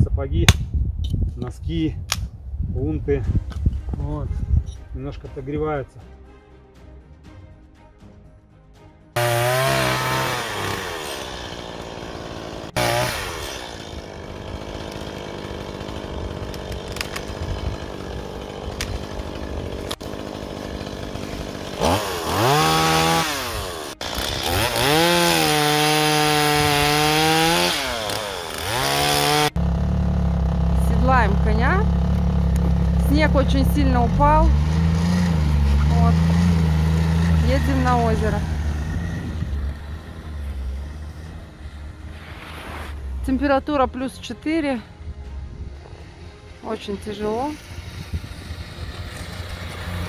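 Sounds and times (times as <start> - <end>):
chainsaw cutting a log: 9.2 - 41.4, 47.3 - 50.0
snowmobile engine running: 9.2 - 44.8, 46.8 - 50.0.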